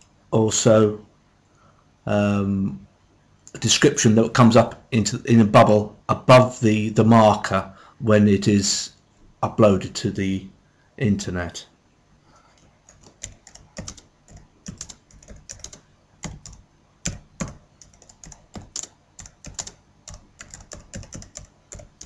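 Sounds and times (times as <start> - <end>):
computer keyboard typing: 12.8 - 22.0.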